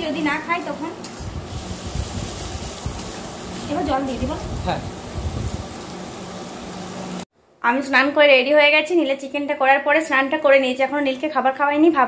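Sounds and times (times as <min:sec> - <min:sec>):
chicken sizzling in a pan: 0:00.0 - 0:07.2.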